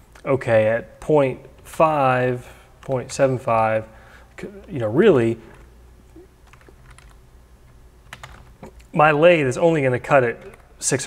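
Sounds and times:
low steady hum: 0.0s - 11.0s
computer keyboard keystrokes: 6.4s - 7.2s, 8.0s - 8.8s.

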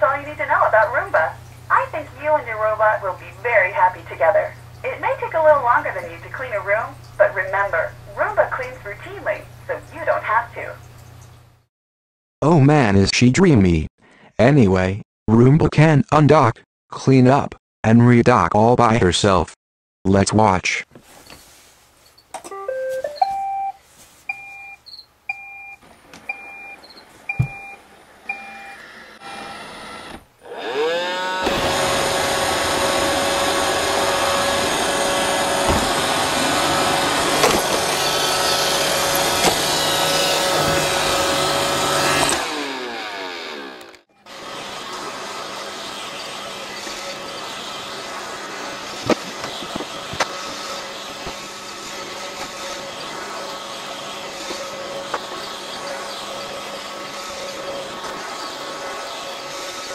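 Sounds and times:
robot vacuum motor whirring: 28.3s - 59.9s.

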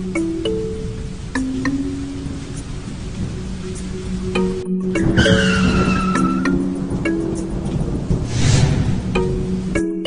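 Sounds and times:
intro music with sustained notes: 0.0s - 10.0s
high falling squeal: 5.2s - 6.6s, 8.2s - 9.7s
rush of noise: 8.2s - 9.8s
steady low drone: 8.2s - 9.8s.

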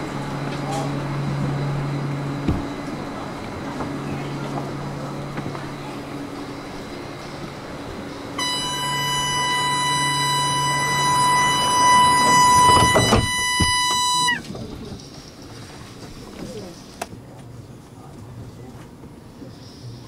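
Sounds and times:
high door warning tone: 0.0s - 14.5s
train humming at standstill: 0.0s - 20.0s
train door thudding shut: 2.3s - 7.0s, 8.1s - 14.8s.

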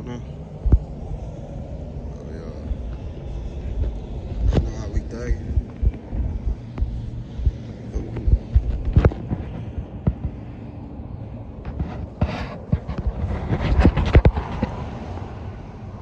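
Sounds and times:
low rumble: 0.0s - 16.0s
faint voices: 2.0s - 7.0s.

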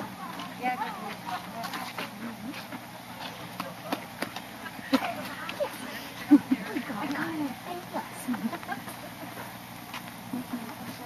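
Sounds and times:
people talking indistinctly: 0.0s - 9.6s.

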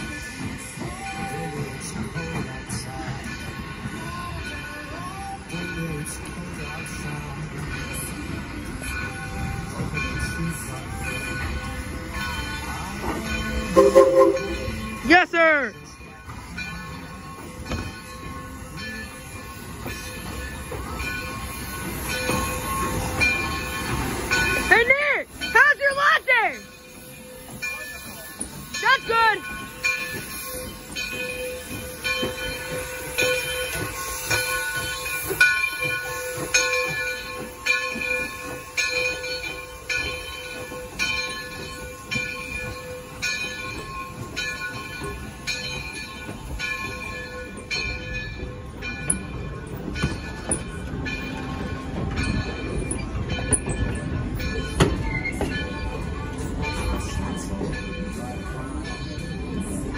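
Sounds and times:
sharp clanking of locomotive: 0.0s - 59.9s
steam locomotive rumbling: 0.0s - 59.9s.

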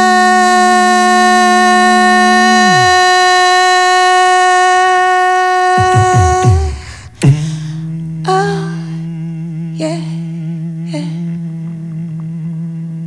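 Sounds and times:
voices holding hummed notes: 0.0s - 13.0s
low sliding vocal sounds: 1.4s - 3.4s, 5.7s - 11.5s.

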